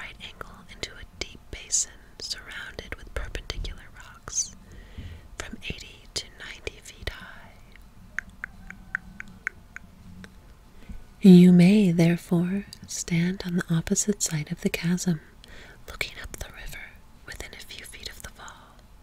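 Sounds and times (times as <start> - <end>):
person whispering: 0.0 - 4.6, 5.4 - 7.6, 15.9 - 18.8
tongue clicks: 7.7 - 10.4.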